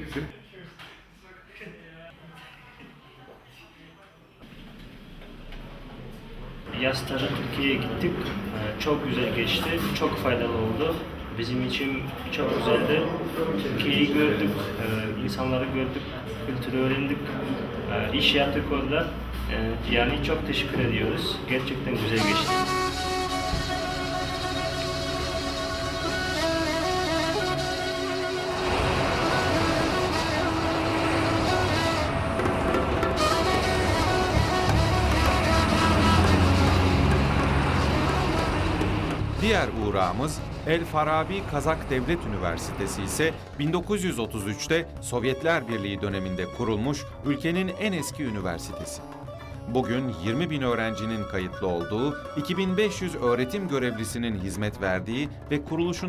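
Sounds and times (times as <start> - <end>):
city traffic: 4.6 - 14.9, 15.5 - 44.0
background music: 17.2 - 56.0.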